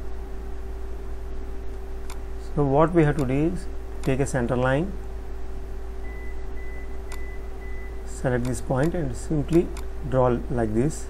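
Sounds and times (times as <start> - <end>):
low electrical hum: 0.0 - 11.0
click: 2.0 - 2.2, 8.4 - 9.9.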